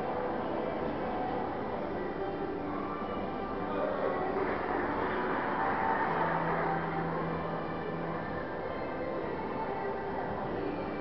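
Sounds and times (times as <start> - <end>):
gymnasium hall background noise: 0.0 - 11.0.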